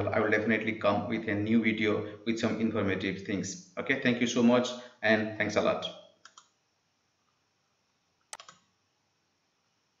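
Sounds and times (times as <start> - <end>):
computer mouse clicking: 6.2 - 6.6, 8.3 - 8.7.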